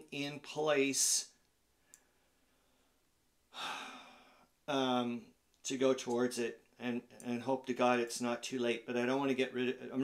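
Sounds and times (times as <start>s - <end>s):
man breathing out with a sigh: 2.5s - 4.5s.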